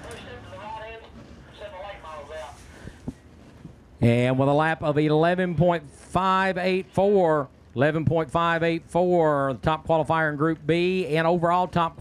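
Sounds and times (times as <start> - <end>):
low ambient murmur: 0.0 - 12.0.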